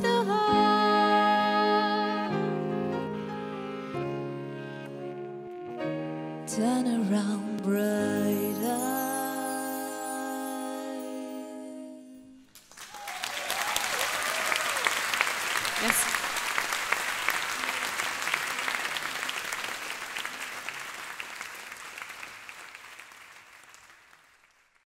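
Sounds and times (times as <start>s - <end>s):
audience applauding and cheering: 12.5s - 24.8s
whoops: 12.8s - 16.6s.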